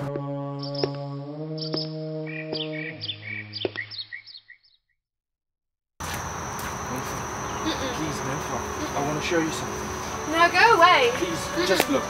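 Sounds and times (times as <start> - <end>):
crickets chirring: 6.0 - 12.0.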